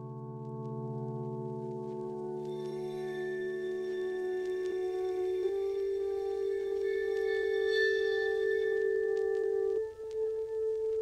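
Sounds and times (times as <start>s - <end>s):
long held ringing note: 2.5s - 9.9s.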